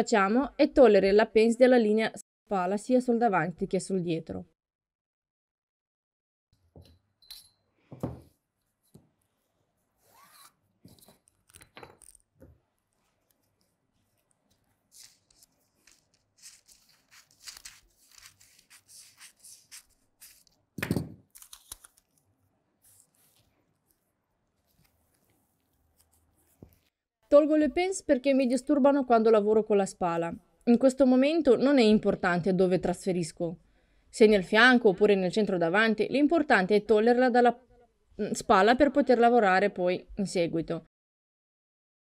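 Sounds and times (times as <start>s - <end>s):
soft knocks on table: 7.9s - 8.3s
paper rustling: 12.9s - 20.6s, 21.3s - 27.0s
scissors snipping paper: 13.3s - 20.6s, 21.3s - 22.2s.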